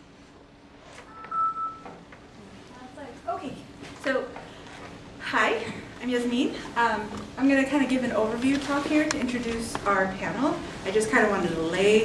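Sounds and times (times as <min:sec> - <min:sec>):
high electronic beep: 0:01.1 - 0:01.9.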